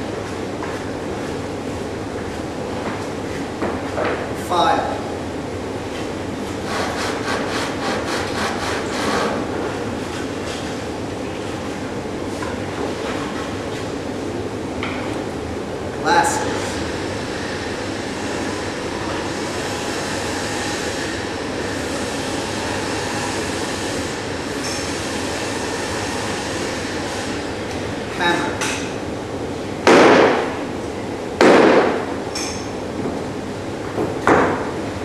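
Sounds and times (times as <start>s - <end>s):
hammer striking wooden board: 29.9s - 30.5s, 31.4s - 32.0s.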